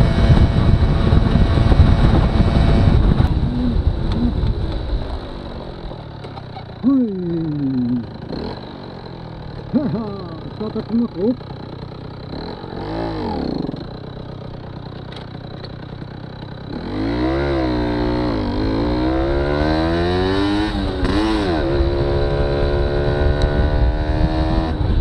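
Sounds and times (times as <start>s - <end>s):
moped engine accelerating: 0.0s - 25.0s
moped engine idling: 3.3s - 16.9s.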